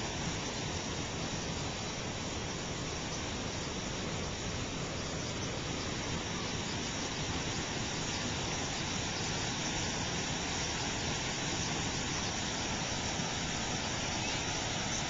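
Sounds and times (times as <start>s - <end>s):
creek water rushing: 0.0s - 15.0s.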